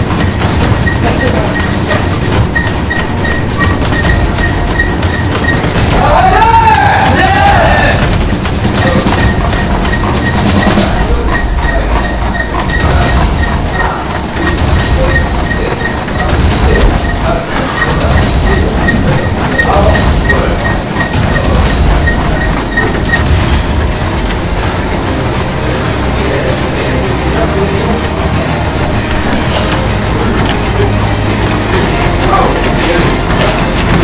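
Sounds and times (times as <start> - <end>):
rapid footfalls on treadmills: 0.0 - 34.0
treadmill belts and motors rumbling: 0.0 - 34.0.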